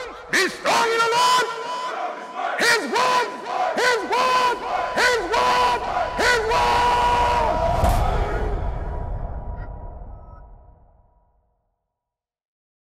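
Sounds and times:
voices shouting and chanting: 0.0s - 9.0s.

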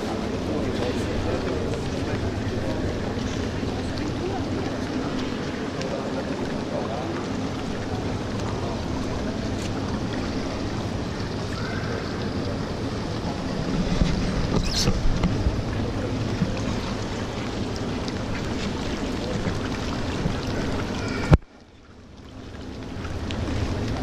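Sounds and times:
reverberant hall sound: 0.0s - 21.3s
water wash in indoor pool: 0.0s - 24.0s.

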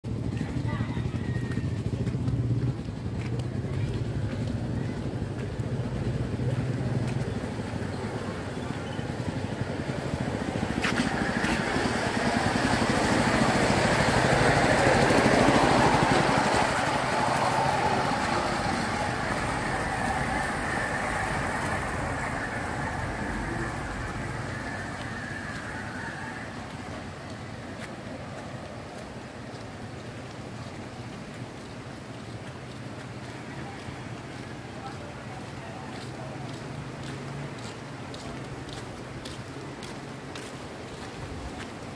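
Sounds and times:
rail trolley rolling on rails: 0.1s - 41.9s.

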